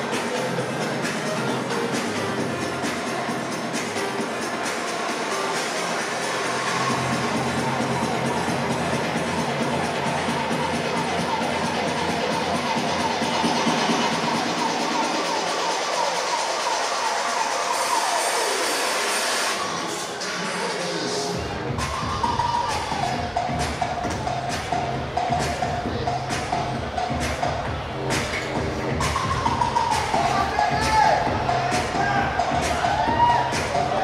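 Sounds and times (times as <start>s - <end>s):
audience cheering and shouting: 0.0s - 34.0s
music over sound system: 0.0s - 34.0s.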